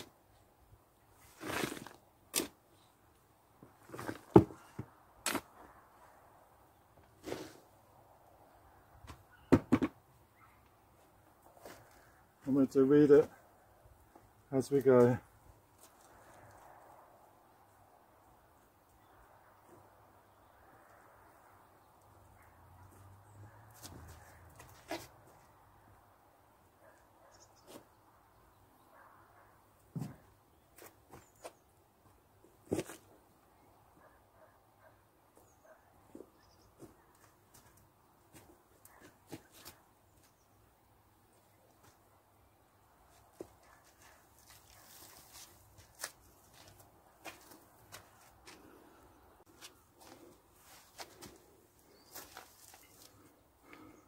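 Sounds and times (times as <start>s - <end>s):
hand spreading soil: 1.2s - 2.5s, 7.2s - 7.7s.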